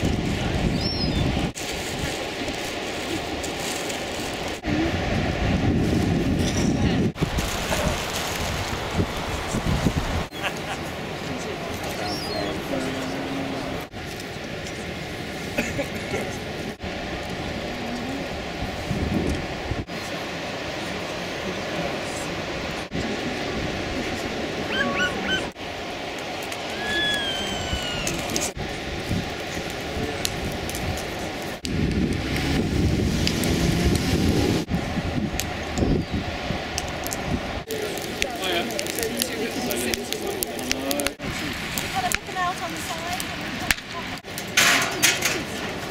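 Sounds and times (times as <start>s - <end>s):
surf: 0.0s - 45.9s
wind: 0.0s - 45.9s
crowd chatter: 9.3s - 18.6s, 19.9s - 25.7s, 26.5s - 31.6s, 37.6s - 45.9s
short high-pitched calls: 26.8s - 28.2s.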